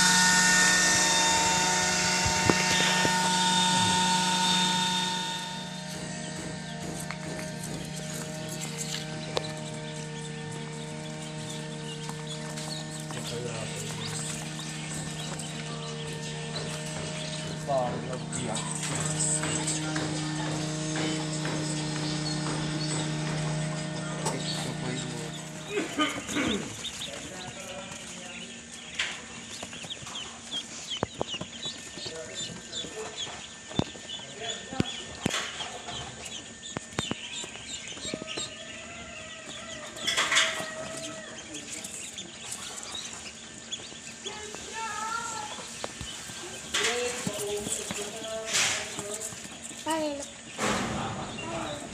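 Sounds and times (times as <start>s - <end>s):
sharp knocks: 0.0s - 26.3s
ducklings peeping: 0.0s - 51.9s
steady machine hum: 0.0s - 51.9s.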